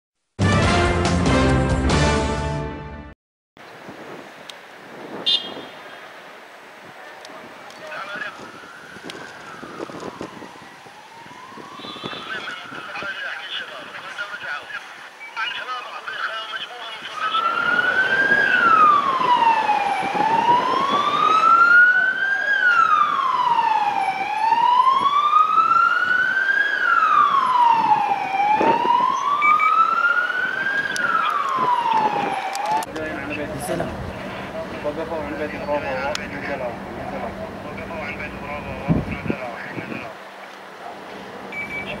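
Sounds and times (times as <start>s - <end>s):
distant traffic: 3.6s - 42.0s
wind: 3.6s - 42.0s
police siren wailing: 7.3s - 40.1s.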